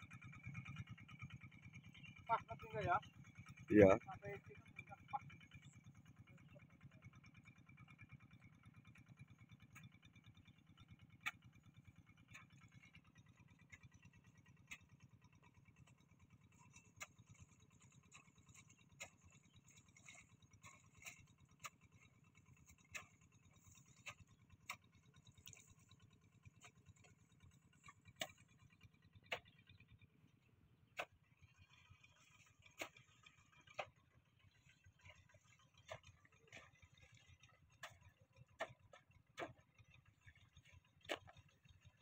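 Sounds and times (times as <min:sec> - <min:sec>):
distant tractor engine running: 0:00.0 - 0:42.0.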